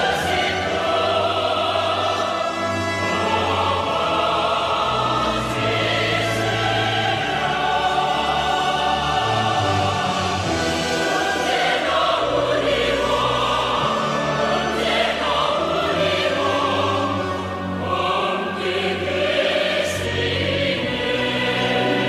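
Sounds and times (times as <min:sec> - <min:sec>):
choir singing held notes: 0:00.0 - 0:22.0.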